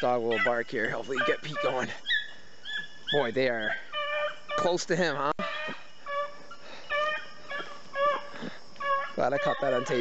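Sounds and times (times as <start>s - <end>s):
hounds baying: 0.0s - 10.0s.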